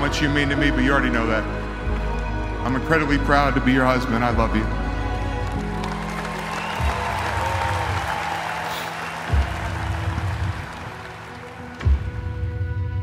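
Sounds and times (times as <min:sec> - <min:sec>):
soundtrack music: 0:00.0 - 0:13.0
stadium crowd applauding: 0:01.8 - 0:03.2, 0:05.2 - 0:12.3.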